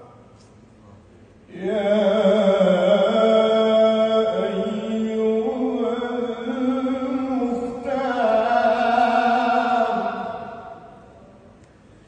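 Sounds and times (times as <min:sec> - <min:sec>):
man singing unaccompanied: 0:01.5 - 0:10.9.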